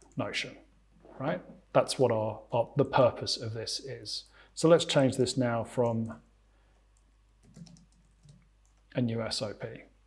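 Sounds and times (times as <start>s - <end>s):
typing on computer keyboard: 6.9s - 8.9s.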